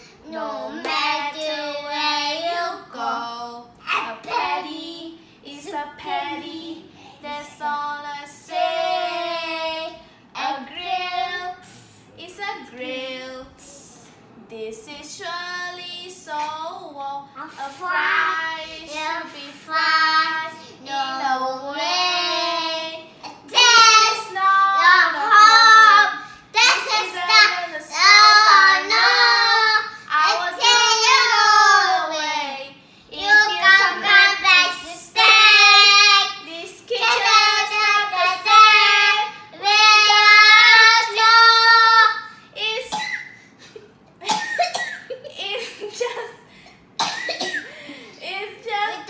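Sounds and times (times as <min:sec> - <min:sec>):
girl and boy singing: 0:00.0 - 0:43.3.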